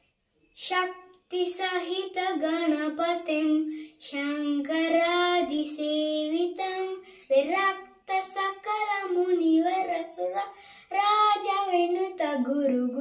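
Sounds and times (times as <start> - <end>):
boy singing a hymn: 0.6 - 13.0.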